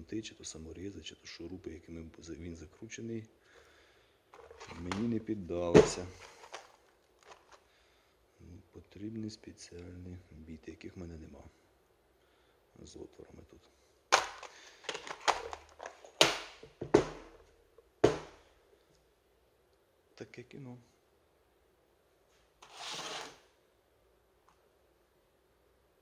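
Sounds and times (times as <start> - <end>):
faint clicks of plastic case and bits: 6.1 - 7.7, 14.2 - 16.2
plastic case knocking on workbench: 16.8 - 17.3, 18.0 - 18.4.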